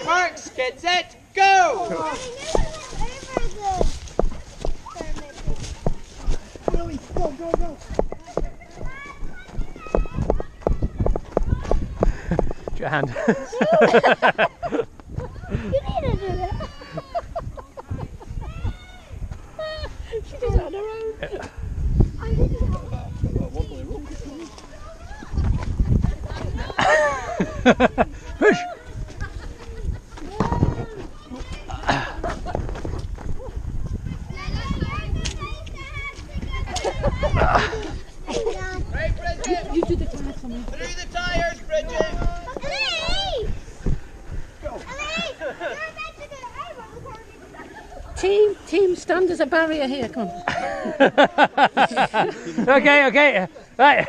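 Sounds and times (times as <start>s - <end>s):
people calling: 1.4s - 21.4s
running footsteps on leaves: 1.8s - 13.1s.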